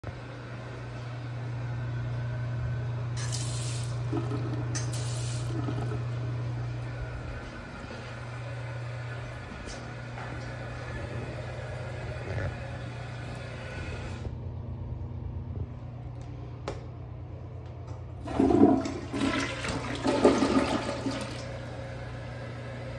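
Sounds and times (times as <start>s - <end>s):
steady low hum: 0.0s - 22.9s
faucet water running into sink: 3.2s - 6.0s
toilet flushing: 3.2s - 6.4s, 18.2s - 22.0s.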